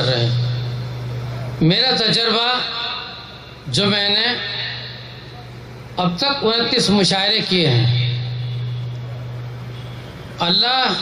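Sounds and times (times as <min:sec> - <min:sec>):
faint venue hiss: 0:00.0 - 0:11.0
low hum over loudspeakers: 0:00.0 - 0:11.0.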